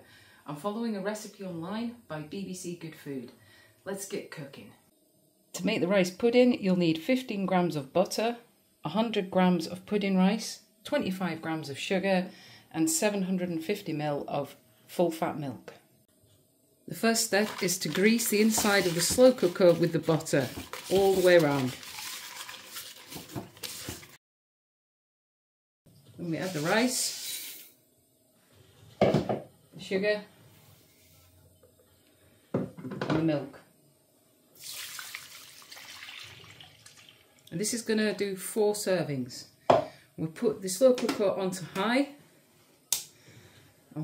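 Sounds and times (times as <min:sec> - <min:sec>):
paper scrubbing rustle: 0:17.2 - 0:24.2, 0:26.4 - 0:27.2.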